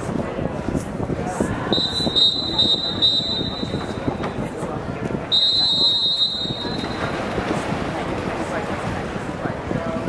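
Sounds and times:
crowd chatter: 0.0s - 10.0s
referee's whistle blast: 1.8s - 3.9s, 5.3s - 7.1s.

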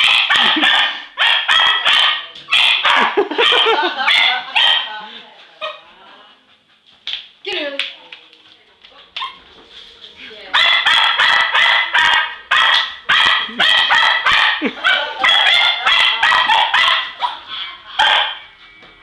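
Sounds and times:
dog barking excitedly: 0.0s - 5.0s, 10.5s - 18.4s.

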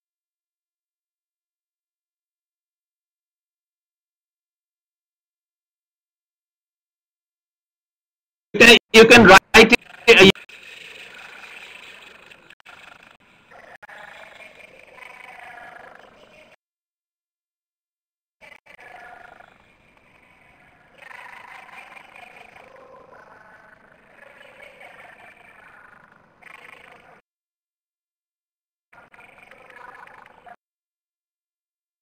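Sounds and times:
garbled voice over video call: 8.6s - 16.6s, 20.8s - 27.2s.

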